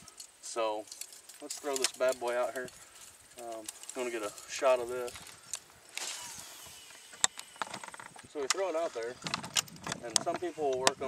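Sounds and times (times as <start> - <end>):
fishing line rushing off reel: 5.3 - 8.3.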